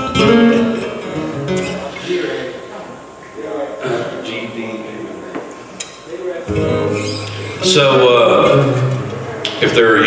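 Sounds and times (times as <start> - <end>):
acoustic guitar picking and strumming: 0.0 - 2.5, 6.5 - 10.0.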